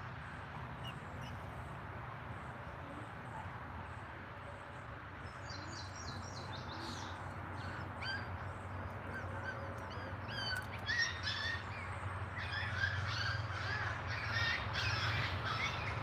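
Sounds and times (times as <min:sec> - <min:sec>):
birds chirping: 0:00.3 - 0:16.0.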